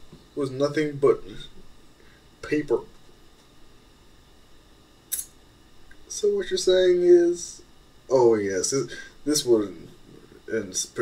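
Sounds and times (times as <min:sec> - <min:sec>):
recording hiss: 0:04.9 - 0:11.0.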